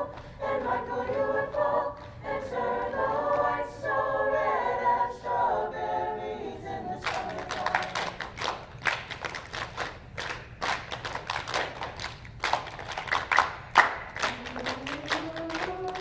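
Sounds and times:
choir voices: 0:00.0 - 0:08.3, 0:14.1 - 0:16.0
hand claps and body slaps: 0:07.1 - 0:16.0.

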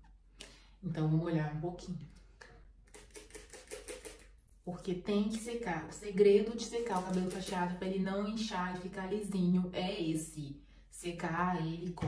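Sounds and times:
spray bottle squirting: 0:02.8 - 0:04.3, 0:06.8 - 0:07.6.

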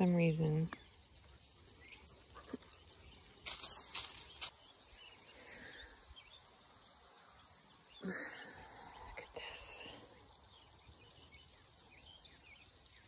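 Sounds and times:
faint outdoor background: 0:00.0 - 0:13.0.

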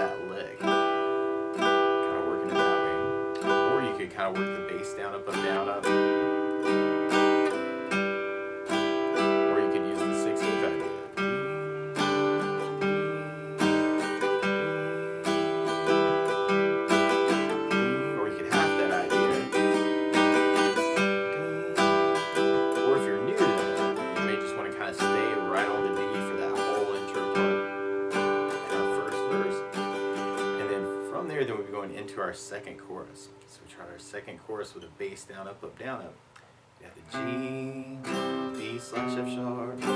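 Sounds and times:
acoustic guitar strumming: 0:00.0 - 0:39.9.

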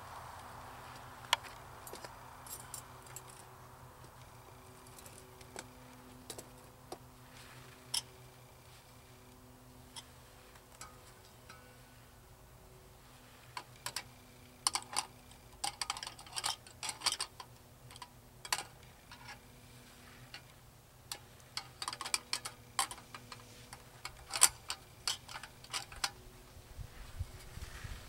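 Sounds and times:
metal parts clicking and clinking: 0:13.6 - 0:19.4, 0:20.3 - 0:26.2.

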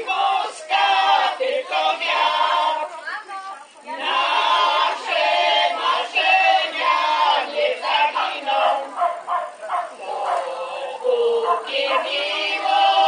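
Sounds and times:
women singing unaccompanied: 0:00.0 - 0:13.0.

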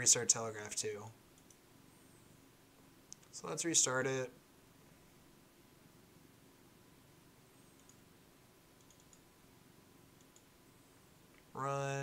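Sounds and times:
computer mouse clicks: 0:01.3 - 0:01.6, 0:03.1 - 0:03.3, 0:07.6 - 0:08.0, 0:08.8 - 0:09.3, 0:10.2 - 0:10.5.

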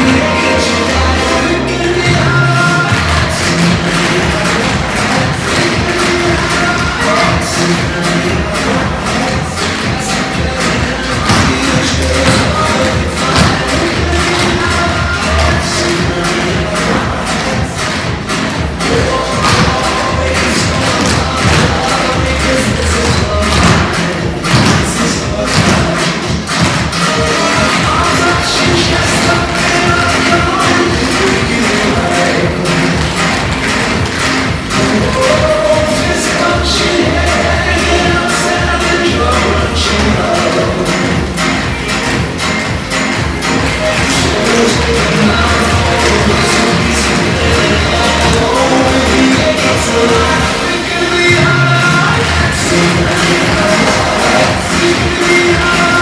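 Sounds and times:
loud dance music: 0:00.0 - 0:56.0.

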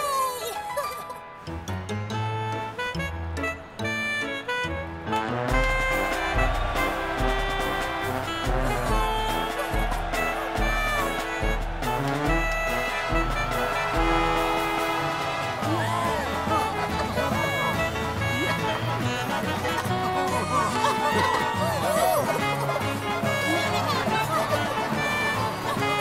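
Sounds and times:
brass marching band music: 0:02.2 - 0:26.0
deep steady beat: 0:05.5 - 0:19.2.

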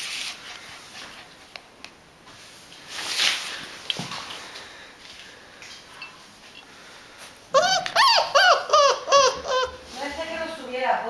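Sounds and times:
puppy yipping: 0:07.5 - 0:09.8.

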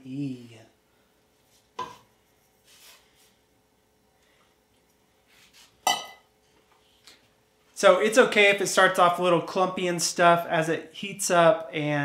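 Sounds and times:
metal bowl clink: 0:05.8 - 0:06.3.

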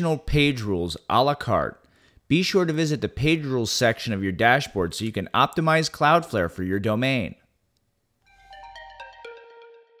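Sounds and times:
chiming audio logo jingle: 0:08.3 - 0:10.0.

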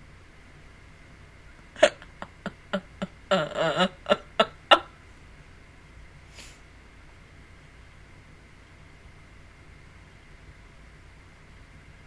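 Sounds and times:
woman's stifled laughter: 0:01.8 - 0:04.9.

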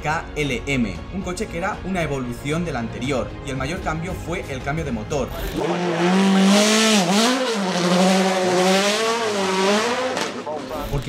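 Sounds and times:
racing car engine high revs: 0:05.5 - 0:10.7.

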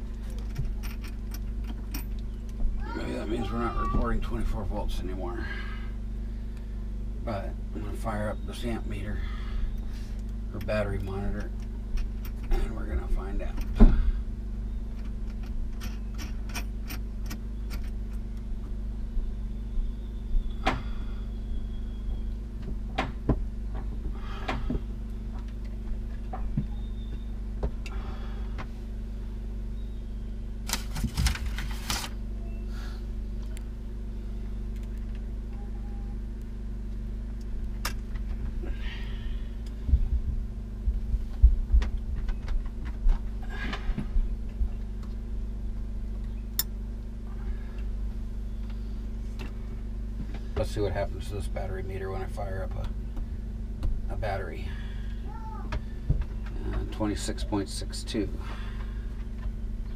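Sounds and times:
low hum: 0:00.0 - 0:59.9.

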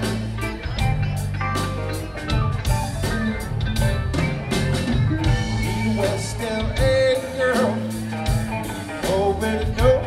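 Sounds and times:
bass guitar: 0:00.0 - 0:10.0
drum kit: 0:00.0 - 0:10.0
electric guitars: 0:00.0 - 0:10.0
keyboards: 0:00.0 - 0:10.0.

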